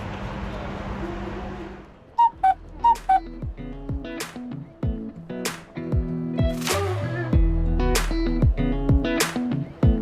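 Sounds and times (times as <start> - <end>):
guitar and kick drum music: 2.8 - 10.0.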